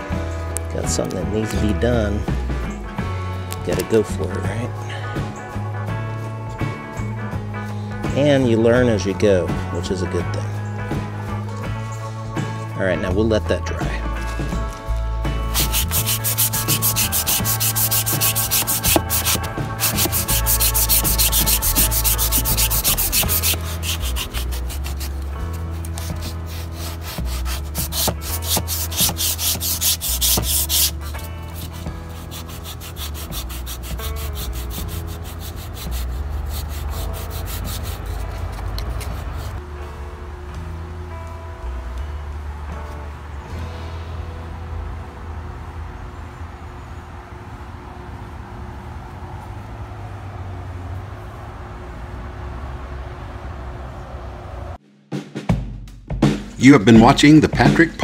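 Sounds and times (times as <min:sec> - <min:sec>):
sanding block rasping: 0:15.5 - 0:39.6.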